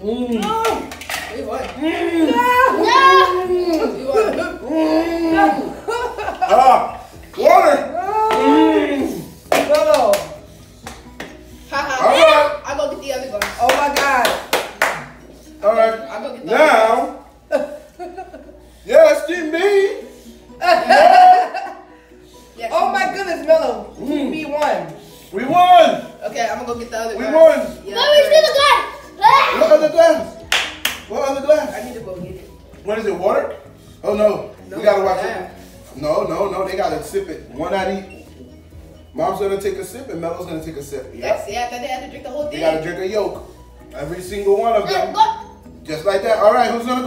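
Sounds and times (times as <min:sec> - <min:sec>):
people exclaiming wordlessly: 0:01.7 - 0:09.4, 0:20.6 - 0:21.7
excited shouting voices: 0:01.8 - 0:09.4, 0:11.8 - 0:12.7
sharp claps: 0:09.5 - 0:11.4, 0:13.4 - 0:15.1, 0:30.5 - 0:31.1.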